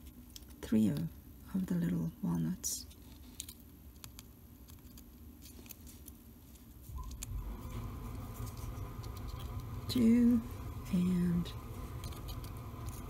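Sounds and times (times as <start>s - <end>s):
handling noise rumble: 6.9s - 13.0s.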